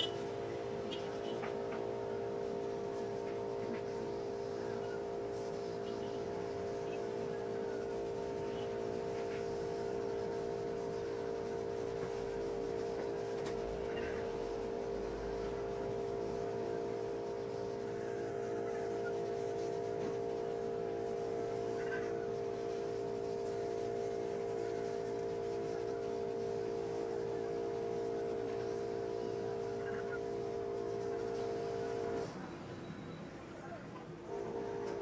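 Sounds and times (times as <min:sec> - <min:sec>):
steady drone of held tones: 0:00.0 - 0:03.0, 0:13.6 - 0:35.0.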